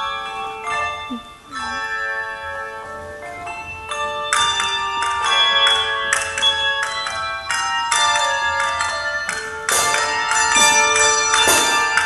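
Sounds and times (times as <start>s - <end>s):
handbell choir ringing chords: 0.0s - 12.0s.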